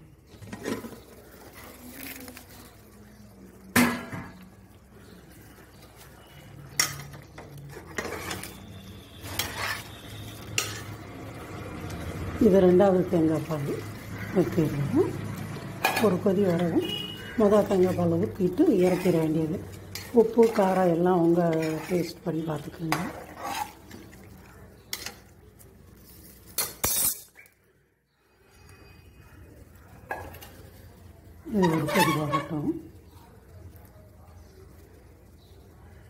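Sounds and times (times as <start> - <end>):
ladle stirring in metal pot: 0.3 - 3.0, 3.8 - 27.5, 31.4 - 33.2.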